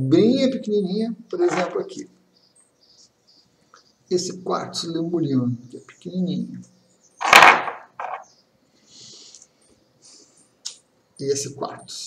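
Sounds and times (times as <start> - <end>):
handling rustling: 1.4 - 2.0, 7.2 - 8.2.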